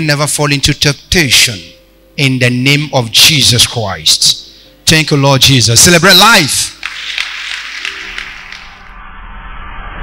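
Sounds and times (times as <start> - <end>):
congregation clapping: 6.1 - 9.0.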